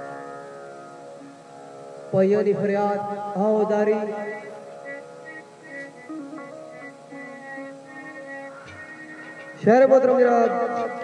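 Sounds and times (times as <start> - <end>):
plucked string chord ringing: 0.0 - 11.0.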